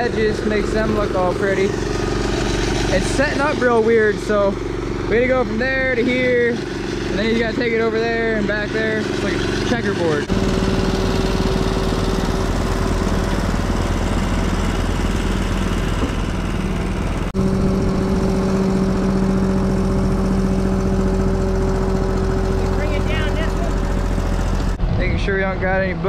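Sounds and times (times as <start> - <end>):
small gasoline engine running: 0.0 - 24.8.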